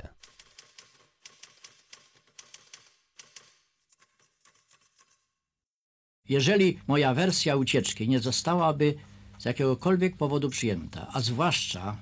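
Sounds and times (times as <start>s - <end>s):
typewriter keys striking: 0.0s - 5.2s.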